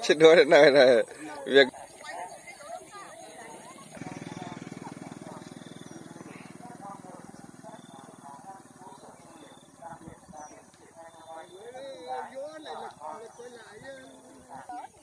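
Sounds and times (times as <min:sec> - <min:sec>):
distant people talking: 0:00.0 - 0:15.0.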